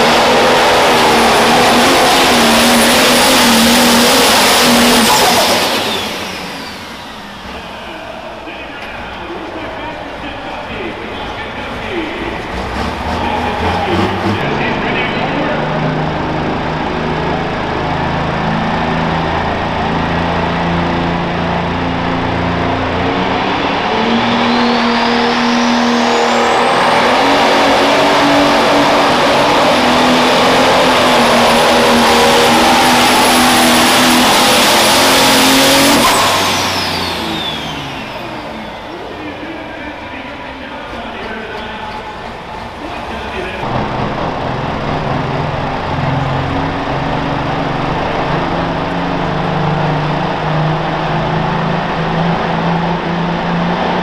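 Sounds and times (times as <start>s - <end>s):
diesel engine at full power: 0.0s - 54.0s
high turbo whine: 0.0s - 54.0s
tractor engine at low speed: 0.0s - 54.0s.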